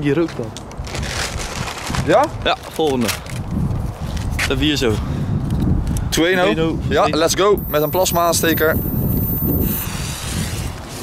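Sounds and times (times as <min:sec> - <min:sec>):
wind rumbling on microphone: 0:00.6 - 0:11.0.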